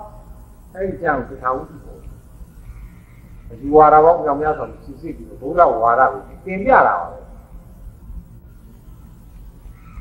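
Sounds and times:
low background hum and rumble: 0.0s - 10.0s.

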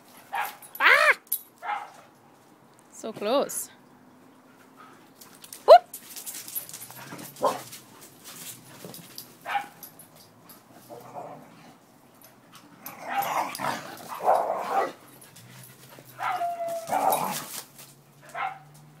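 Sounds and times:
dog yipping and whining: 0.8s - 1.2s, 5.6s - 6.0s, 16.2s - 17.4s.

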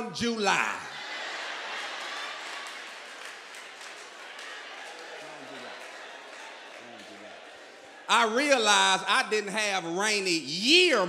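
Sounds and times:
audience applause: 1.0s - 8.1s.

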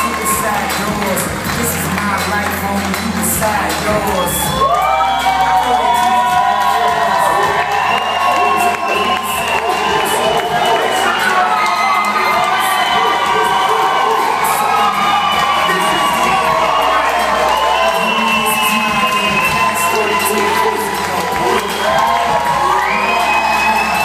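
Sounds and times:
audience cheering and screaming: 0.0s - 24.0s.

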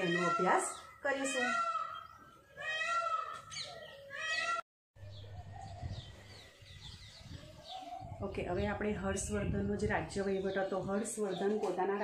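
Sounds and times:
faint birds chirping: 0.0s - 12.0s.

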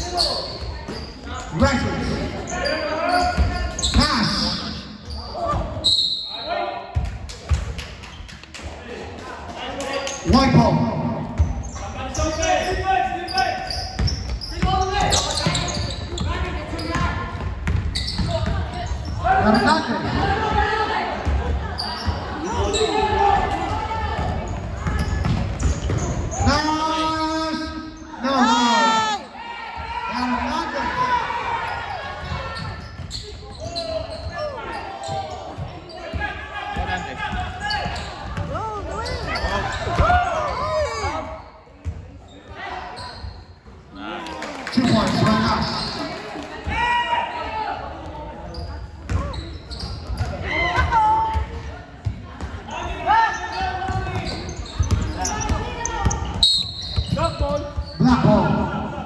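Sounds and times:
voices of players and spectators: 0.0s - 59.0s
ball bouncing on hardwood court: 6.9s - 8.0s, 14.0s - 18.8s, 23.4s - 26.4s, 36.8s - 40.2s, 53.9s - 58.0s.

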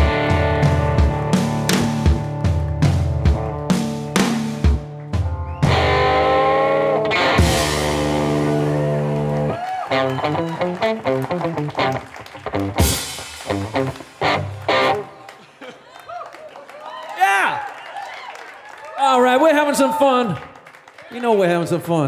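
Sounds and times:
drum kit: 0.0s - 9.5s, 10.1s - 15.0s
electric guitar: 0.0s - 15.4s.

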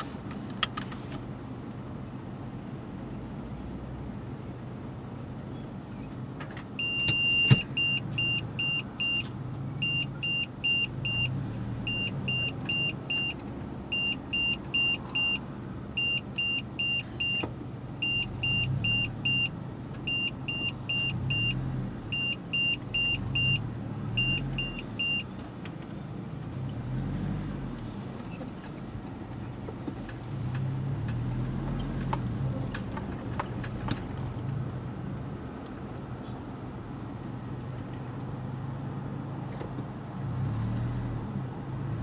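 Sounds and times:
car engine hum: 0.0s - 42.0s
car warning chime beeps: 6.8s - 25.4s.

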